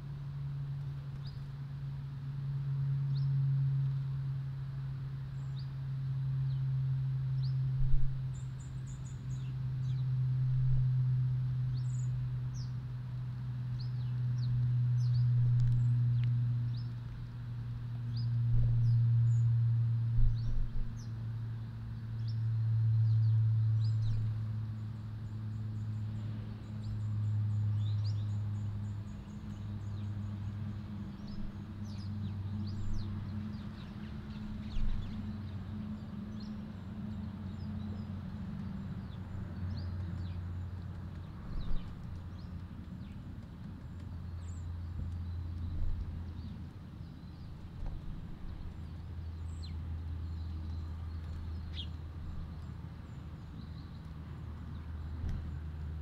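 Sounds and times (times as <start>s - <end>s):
loud low drone: 0.0s - 43.2s
small birds chirping: 0.9s - 1.5s, 7.3s - 10.9s, 11.5s - 56.0s.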